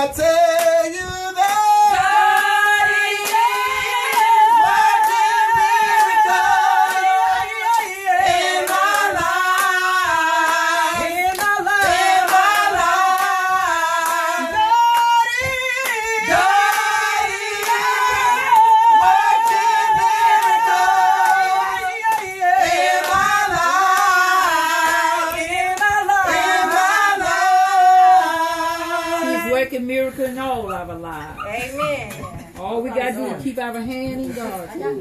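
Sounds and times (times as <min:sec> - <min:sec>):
women singing gospel together: 0:00.0 - 0:35.0.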